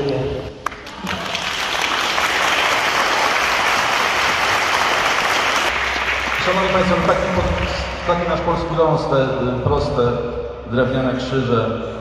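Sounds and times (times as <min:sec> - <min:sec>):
audience applauding: 0:00.6 - 0:08.0.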